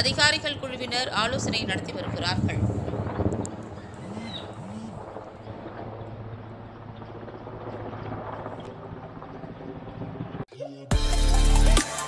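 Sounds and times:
distant helicopter flying overhead: 0:00.0 - 0:10.5.

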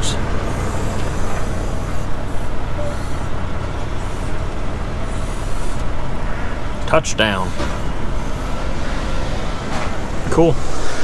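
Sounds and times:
diesel engines rumbling: 0:00.0 - 0:11.0.

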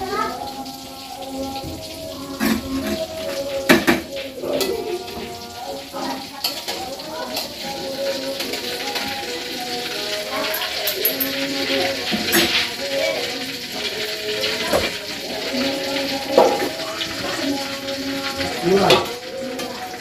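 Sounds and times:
chicken frying: 0:00.0 - 0:20.0.

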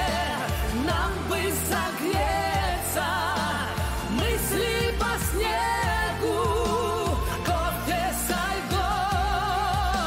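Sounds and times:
person singing a pop ballad: 0:00.0 - 0:10.0.

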